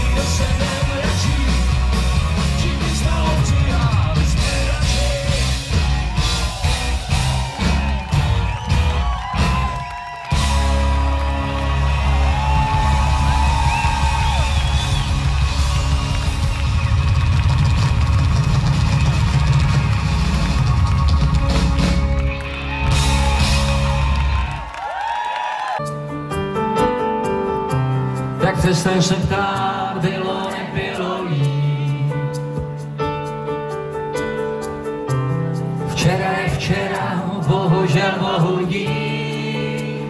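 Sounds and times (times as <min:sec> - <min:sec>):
live pop-rock band playing: 0:00.0 - 0:24.8, 0:25.8 - 0:40.0.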